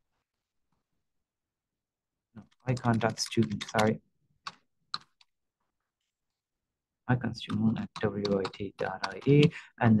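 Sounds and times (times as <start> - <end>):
keyboard typing: 2.4 - 5.4, 7.3 - 9.6.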